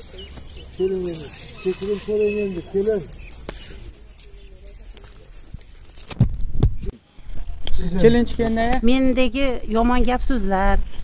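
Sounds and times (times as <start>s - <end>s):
microphone rustling: 0.0s - 9.3s
microphone handling thumps: 6.0s - 6.9s
woman speaking: 8.8s - 10.8s.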